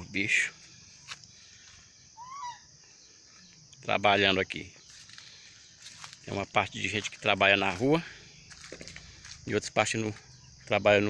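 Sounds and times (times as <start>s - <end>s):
bird call: 1.7s - 3.5s.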